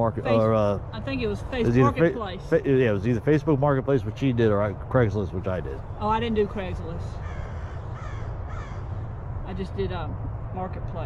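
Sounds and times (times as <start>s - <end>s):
steady low rumble: 0.0s - 11.0s
crow cawing: 7.2s - 9.1s.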